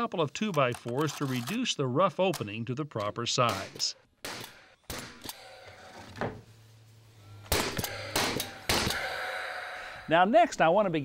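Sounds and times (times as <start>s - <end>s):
nail gun firing: 3.5s - 5.4s, 7.5s - 9.0s
low steady hum: 4.4s - 11.0s.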